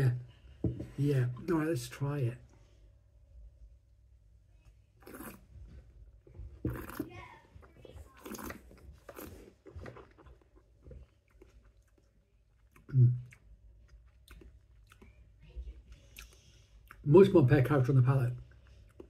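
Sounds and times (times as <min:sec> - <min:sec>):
wet slurps and swishes: 0:05.0 - 0:05.6, 0:06.7 - 0:10.4
man humming mm: 0:12.9 - 0:13.3.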